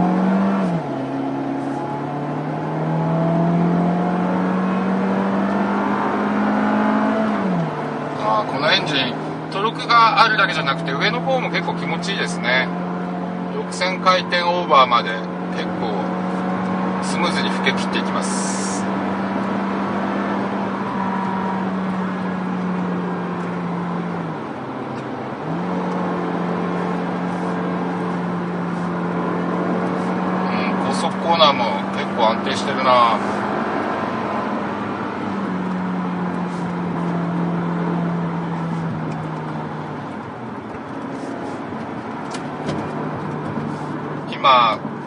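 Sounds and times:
car engine at high revs: 0.0 - 45.0.

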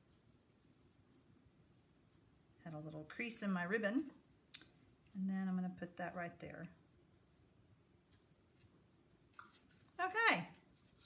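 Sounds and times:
paper rustle: 9.5 - 11.0.

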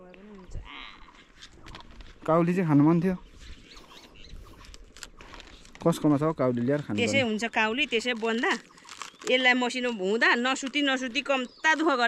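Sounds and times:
cabbage leaves rustling and crackling: 3.6 - 12.0
person speaking: 6.8 - 8.6.

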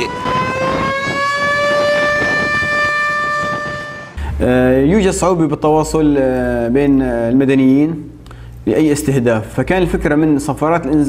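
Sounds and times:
air raid siren wailing: 0.0 - 4.5.

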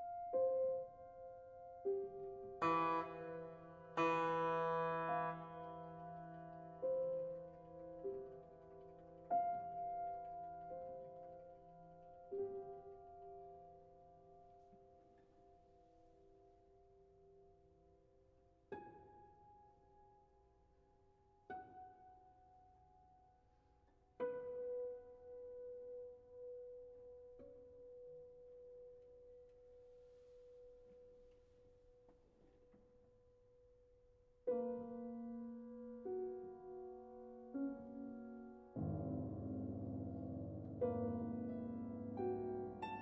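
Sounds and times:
piano notes ringing: 0.0 - 17.5, 34.5 - 43.0
piano strings played inside: 0.0 - 43.0.

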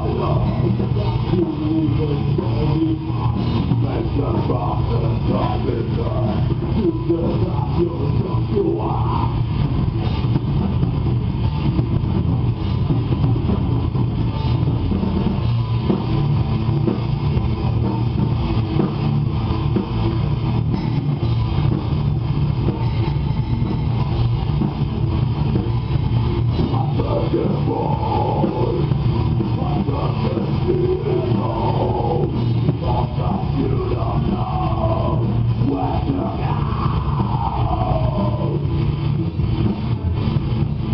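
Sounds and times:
heavy metal band playing: 0.0 - 40.9.

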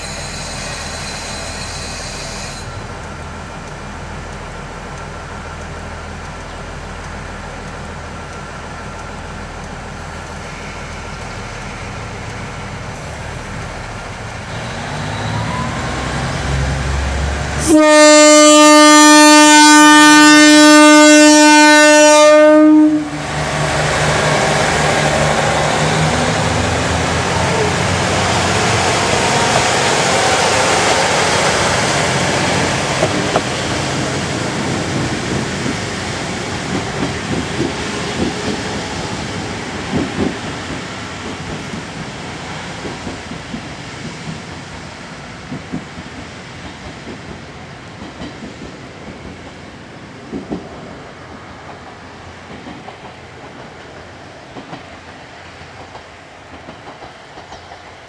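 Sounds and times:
train horn blast: 17.6 - 23.2
train wheels clicking over rail joints: 23.7 - 58.0.

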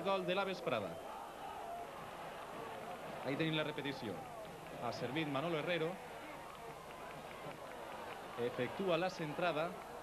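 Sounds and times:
stadium ambience: 0.0 - 10.0.

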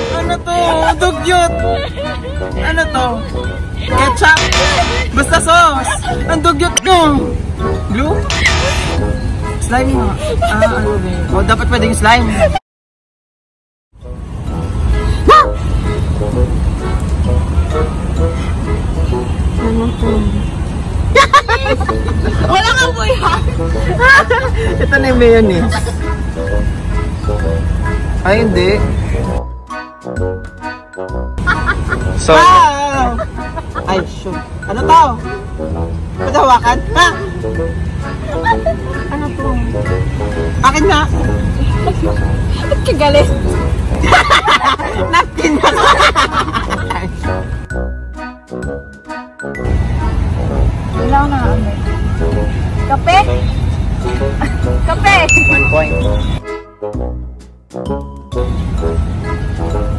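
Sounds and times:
buses passing: 0.0 - 12.6, 14.0 - 59.9
road traffic rumble: 0.0 - 12.6, 14.0 - 59.9
tinkling jingle: 54.0 - 56.3.

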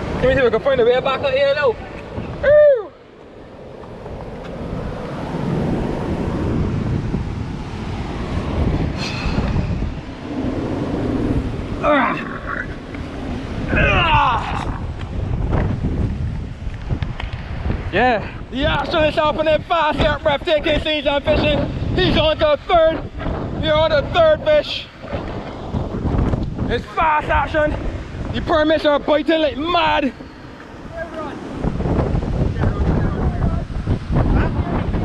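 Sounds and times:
surf: 0.0 - 35.0
wind buffeting microphone: 0.0 - 35.0
short falling cry: 2.4 - 3.0.

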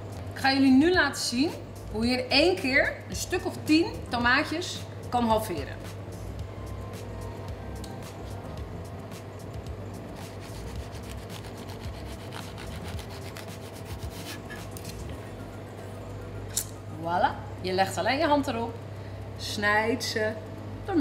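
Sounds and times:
background music: 0.0 - 18.6
knife sawing through tomatoes: 10.2 - 15.1.

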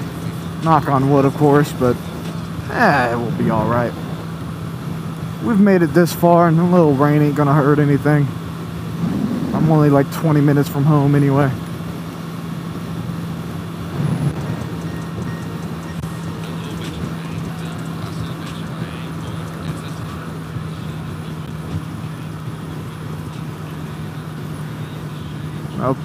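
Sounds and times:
motorcycle engine droning: 0.0 - 26.0
wind rushing: 8.9 - 9.7
faint music: 14.4 - 26.0.

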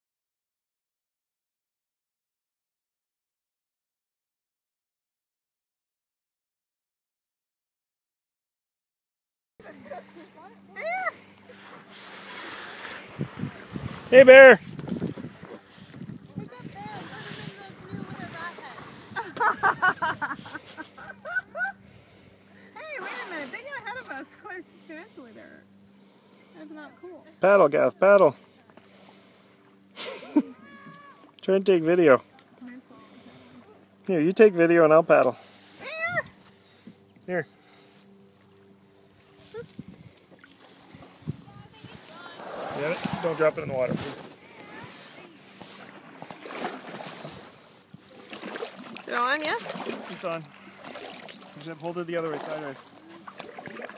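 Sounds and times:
paddle splashing water: 9.6 - 22.2, 35.2 - 53.9.

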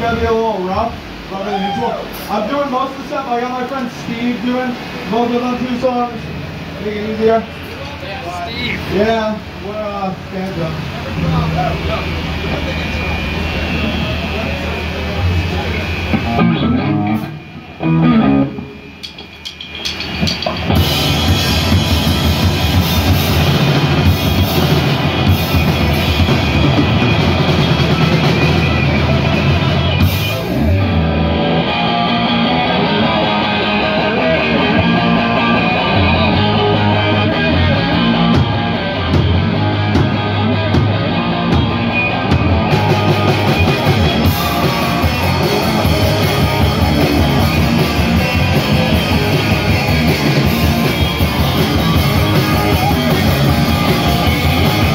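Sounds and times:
electric guitars: 0.0 - 54.9
drum kit: 11.5 - 54.9.

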